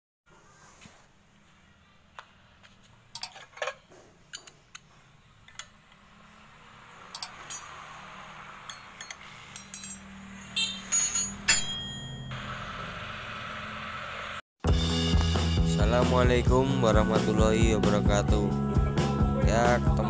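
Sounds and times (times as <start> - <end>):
ringing chime tones: 8.6 - 12.6.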